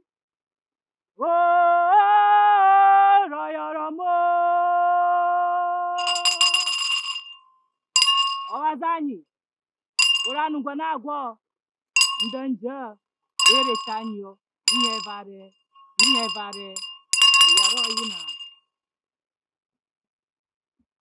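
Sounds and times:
metal handbell ringing: 0:06.0 - 0:07.4, 0:08.0 - 0:08.6, 0:10.0 - 0:10.4, 0:12.0 - 0:12.4, 0:13.4 - 0:14.1, 0:14.7 - 0:15.2, 0:16.0 - 0:18.5.

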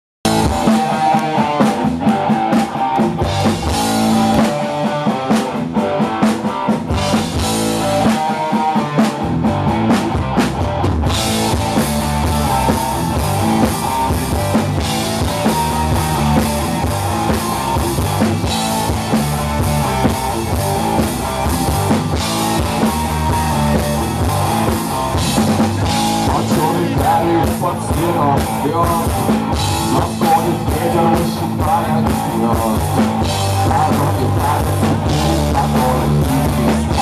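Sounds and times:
live rock band instrumental: 0:00.2 - 0:37.0.

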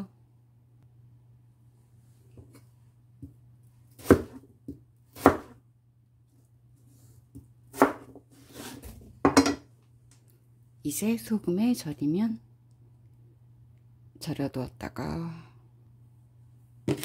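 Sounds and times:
low steady hum: 0:00.0 - 0:17.0
knife chopping on plastic board: 0:04.0 - 0:05.6, 0:07.7 - 0:08.7.

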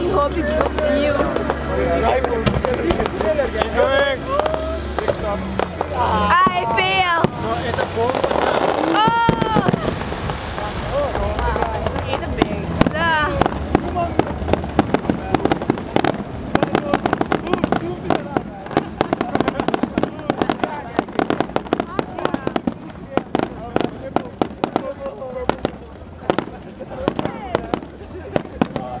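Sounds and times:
fireworks bangs and crackles: 0:00.0 - 0:29.0
people chattering: 0:00.0 - 0:29.0
rising firework whistle: 0:03.6 - 0:22.7.

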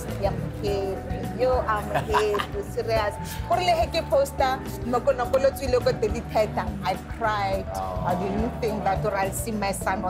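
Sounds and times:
background music with low bass: 0:00.0 - 0:10.0
woman talking: 0:00.0 - 0:10.0.

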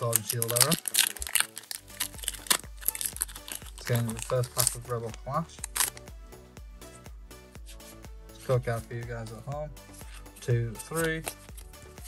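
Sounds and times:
foil wrapper crinkling: 0:00.0 - 0:06.1
background music: 0:00.0 - 0:12.0.

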